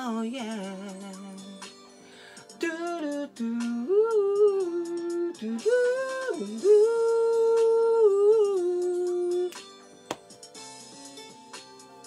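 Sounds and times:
faint backing music: 0:00.0 - 0:12.0.

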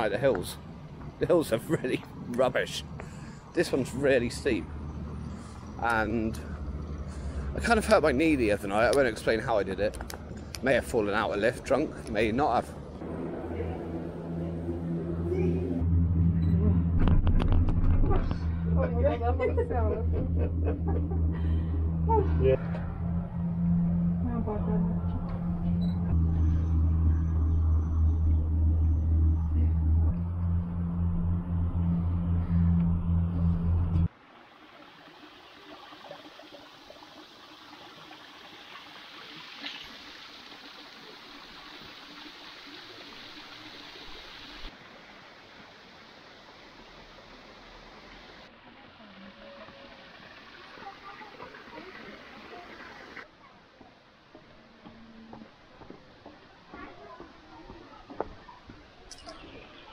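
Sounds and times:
small waterfall trickling: 0:01.4 - 0:13.0, 0:34.1 - 0:53.3
cable car hum and rumble: 0:12.0 - 0:34.1.

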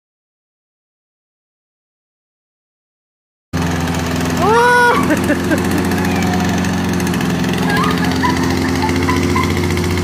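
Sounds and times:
lawn mower engine running: 0:03.6 - 0:10.0.

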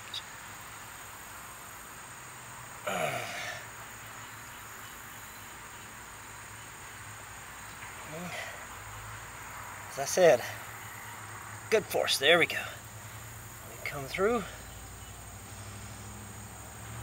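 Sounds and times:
brief strained vocal sound: 0:02.8 - 0:03.6
person saying uh: 0:08.1 - 0:08.5.

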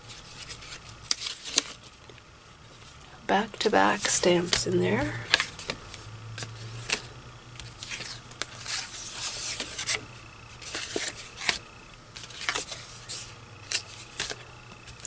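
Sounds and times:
paper rustling and sliding: 0:00.0 - 0:03.0, 0:04.0 - 0:15.0
steady low hum: 0:00.0 - 0:15.0.

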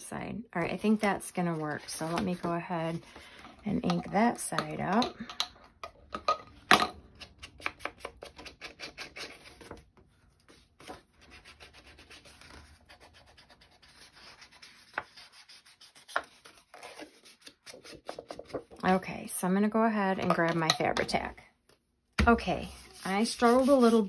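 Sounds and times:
blending tool rubbing on card: 0:22.7 - 0:24.0.

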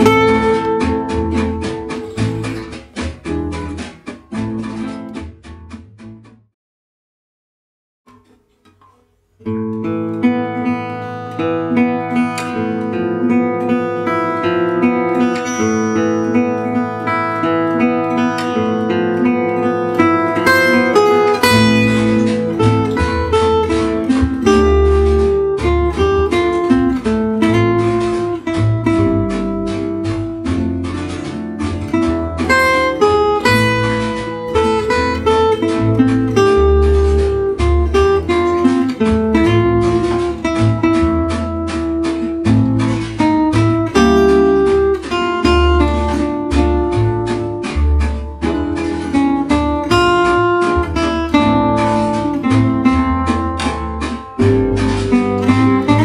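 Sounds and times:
rhythm accompaniment with bass notes: 0:00.0 - 0:06.4, 0:11.9 - 0:56.0
acoustic guitar melody: 0:00.0 - 0:06.6, 0:08.1 - 0:56.0.

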